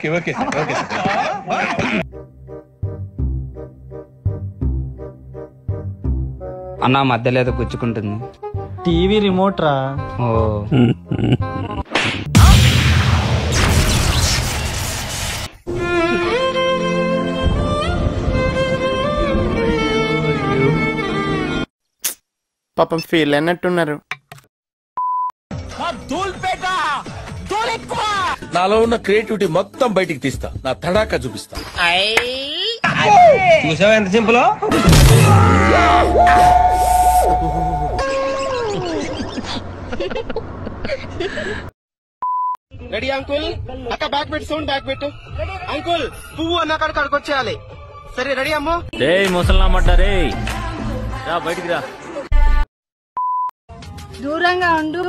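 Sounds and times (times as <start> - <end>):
music: 2.0 - 11.7, 15.7 - 21.7, 25.5 - 31.8, 44.2 - 52.0, 53.7 - 55.0.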